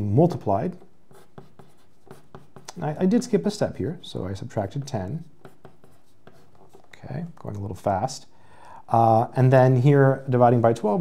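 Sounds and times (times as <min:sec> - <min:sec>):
pencil writing on paper: 0:01.1 - 0:02.7, 0:05.2 - 0:06.9.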